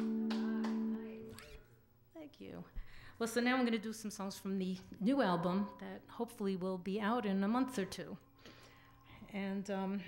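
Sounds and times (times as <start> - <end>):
acoustic guitar chord ringing: 0.0 - 1.6.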